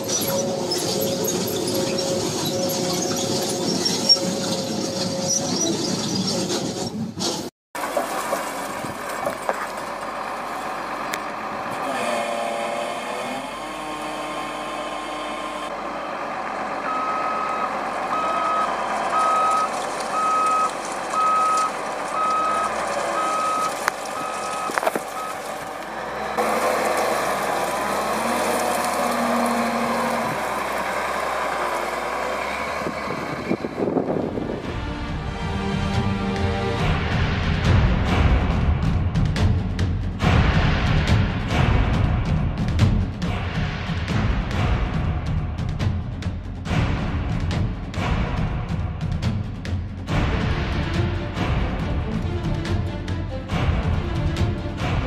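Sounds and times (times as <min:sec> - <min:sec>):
heavy machinery running: 0:00.0 - 0:55.0
reversing alarm beeping: 0:16.8 - 0:25.5.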